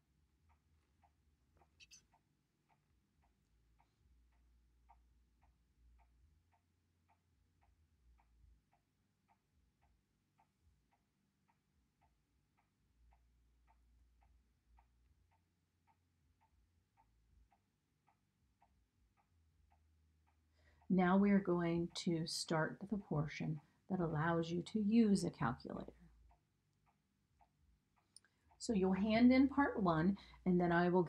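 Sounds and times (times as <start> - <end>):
faint ticking: 0.0 - 31.0.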